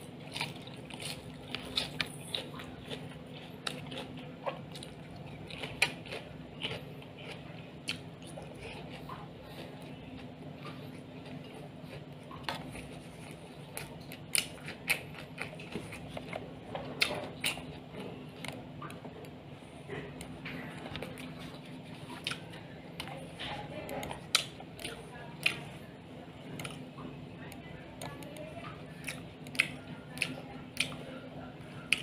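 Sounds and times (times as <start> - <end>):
person chewing: 0.0 - 32.0
steady low hum: 0.0 - 32.0.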